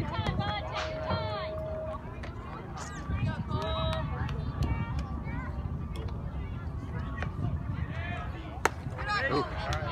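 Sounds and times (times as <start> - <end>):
spectators chatting: 0.0 - 9.9
baseball crack: 8.5 - 9.9.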